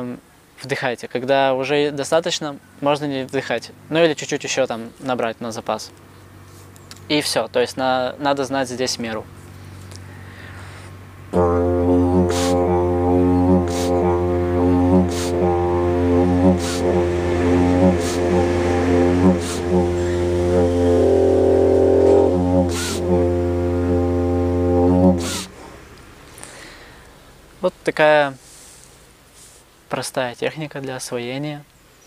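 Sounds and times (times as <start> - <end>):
didgeridoo drone: 9.6 - 27.6.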